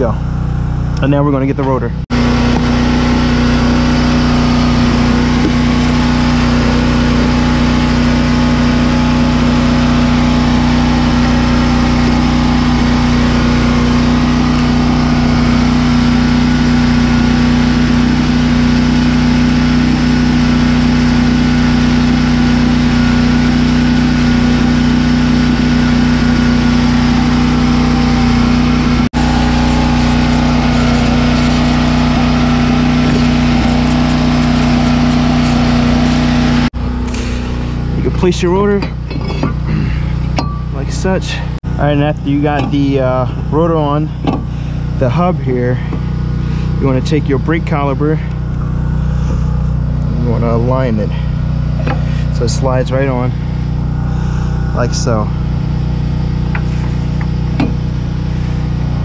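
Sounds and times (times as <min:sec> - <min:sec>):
engine running steadily: 0:00.0 - 0:59.0.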